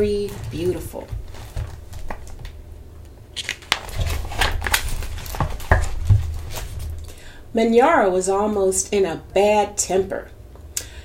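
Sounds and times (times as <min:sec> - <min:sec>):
book pages rustling: 0:00.1 - 0:02.6, 0:03.4 - 0:07.0.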